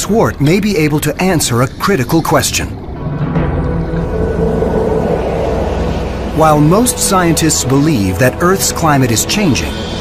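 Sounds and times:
low rumbling drone: 0:00.0 - 0:10.0.

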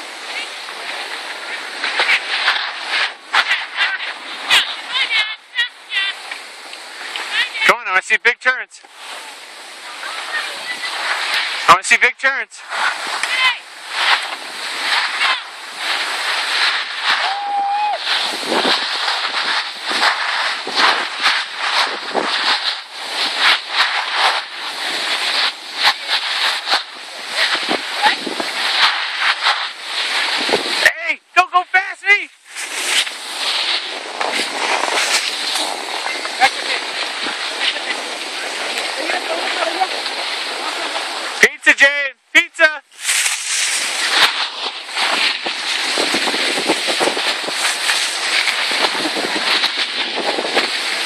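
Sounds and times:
skis hissing over snow: 0:00.0 - 0:51.0
wind on microphone: 0:12.6 - 0:30.8, 0:32.4 - 0:41.3, 0:42.9 - 0:51.0.

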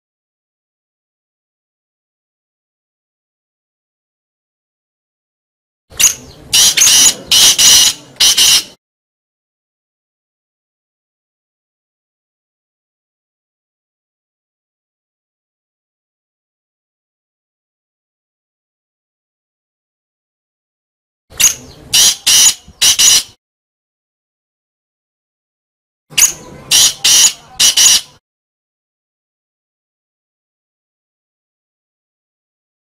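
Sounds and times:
francolin calling: 0:06.0 - 0:08.8, 0:21.4 - 0:23.4, 0:26.2 - 0:28.2.

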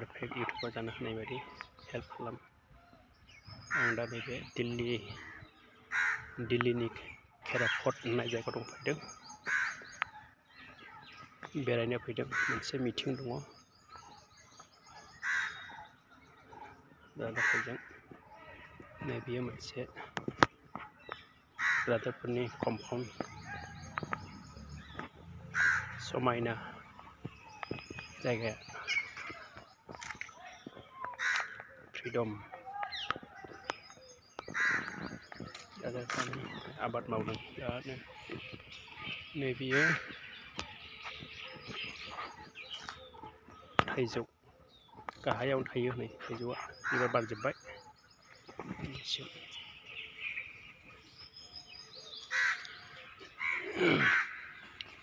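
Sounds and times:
faint bird chirping: 0:00.0 - 0:55.0
short loud bird calls: 0:00.4 - 0:11.6, 0:12.2 - 0:19.5, 0:20.4 - 0:45.4, 0:46.1 - 0:55.0
crow cawing: 0:05.2 - 0:06.4, 0:09.4 - 0:10.1, 0:12.3 - 0:12.8, 0:15.2 - 0:15.8, 0:17.2 - 0:18.8, 0:21.5 - 0:22.2, 0:23.4 - 0:28.0, 0:31.1 - 0:31.8, 0:34.5 - 0:35.2, 0:46.8 - 0:47.4, 0:52.2 - 0:55.0.

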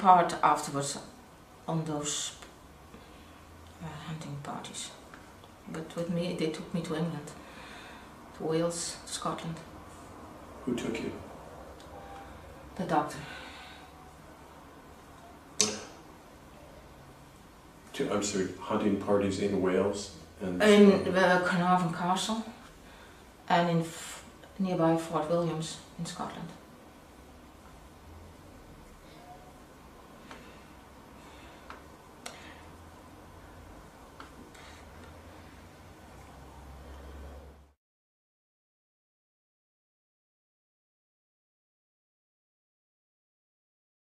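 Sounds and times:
faint low hum: 0:00.0 - 0:37.8.

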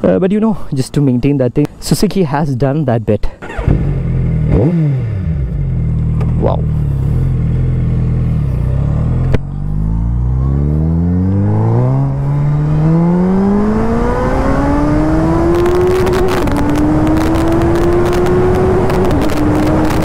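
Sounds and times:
motorcycle engine idling and accelerating: 0:03.4 - 0:20.0.

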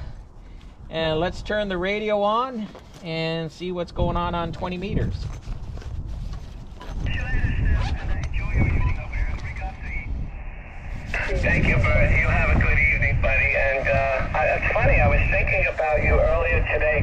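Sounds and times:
wind rumbling on microphone: 0:03.7 - 0:17.0
receiver hiss: 0:07.1 - 0:17.0
thin radio voice from speaker: 0:07.1 - 0:17.0.

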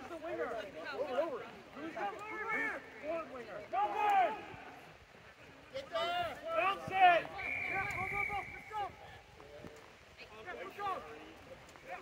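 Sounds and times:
distant voices shouting: 0:05.9 - 0:09.1.

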